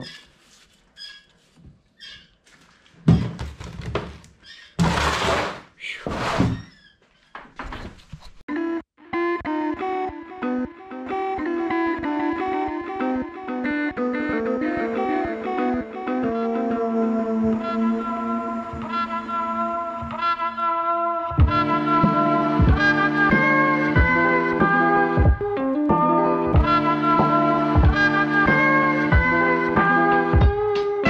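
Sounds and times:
instrumental background music: 8.6 - 31.0.

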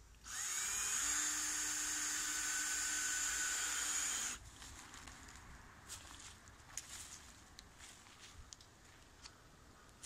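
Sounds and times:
cordless drill drilling into wood: 0.2 - 4.4.

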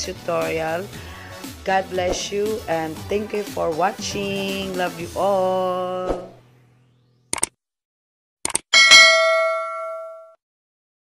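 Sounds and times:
notification bell chime: 8.8 - 10.4.

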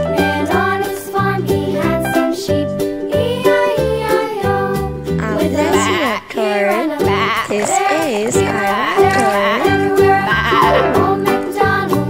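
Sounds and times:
children's song backing track: 0.0 - 12.0
wavering bleating voice: 5.2 - 11.2.

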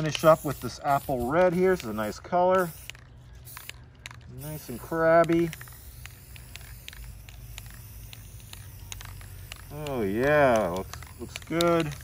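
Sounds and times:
spray paint can sputtering: 0.0 - 12.0.

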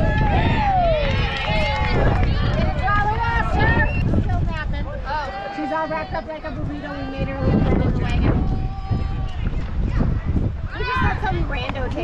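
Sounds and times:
spectators and players cheering: 0.0 - 4.1, 5.0 - 9.5
wind on microphone: 0.0 - 12.0.

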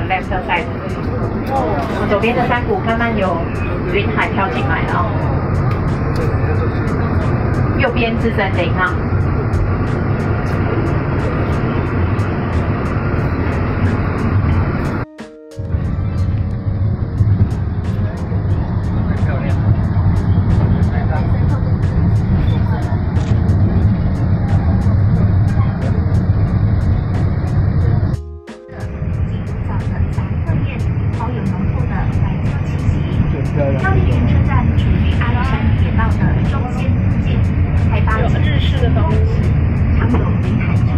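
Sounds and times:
train carriage rumbling on track: 0.0 - 40.9.

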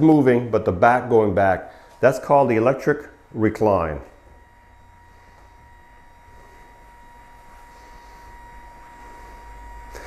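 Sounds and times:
electric actuator hum and whine: 0.0 - 10.0.

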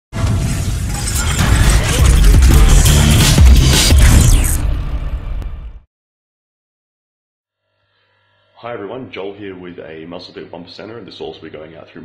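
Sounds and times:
shattering crash: 0.2 - 5.4
deep bass rumble: 1.4 - 5.6.

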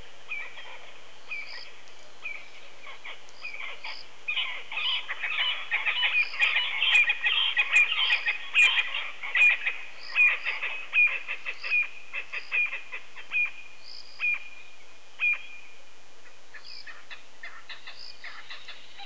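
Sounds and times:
high-pitched chirping animal calls: 0.3 - 14.4.

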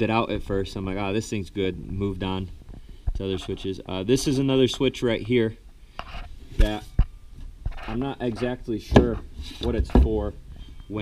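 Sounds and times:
microphone handling knocks: 8.8 - 10.3.

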